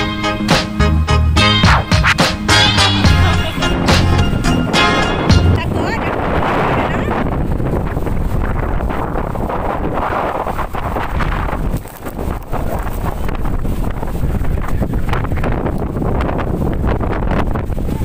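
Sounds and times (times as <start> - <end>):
strong storm wind on microphone: 2.8 - 18.0.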